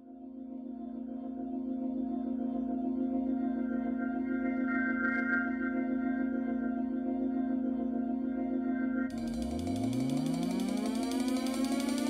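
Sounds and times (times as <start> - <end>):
electronic drone with pitch sweep: 9.1 - 12.0
fast ratchet-like ticking: 9.1 - 12.0.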